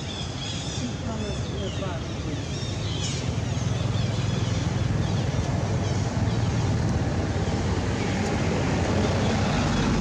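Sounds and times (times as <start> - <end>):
vehicle engine rumble: 0.2 - 10.0.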